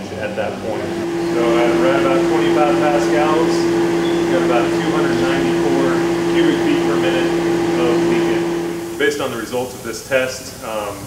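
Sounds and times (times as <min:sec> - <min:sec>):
test fan humming: 0:00.0 - 0:11.0.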